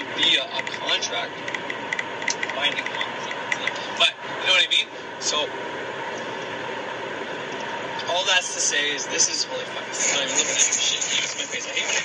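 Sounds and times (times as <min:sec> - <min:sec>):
faint steady hum: 0:00.0 - 0:12.0
steady hiss: 0:03.2 - 0:12.0.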